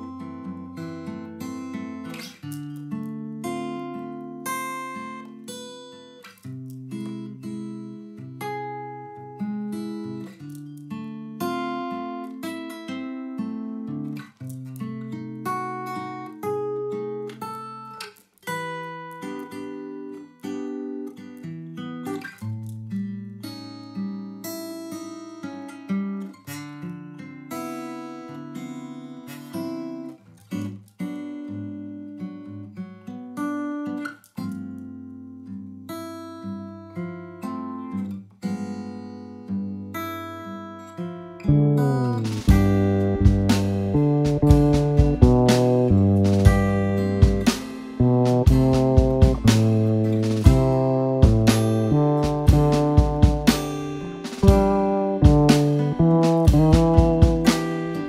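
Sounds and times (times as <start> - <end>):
plucked acoustic guitar music: 0.0 - 58.0.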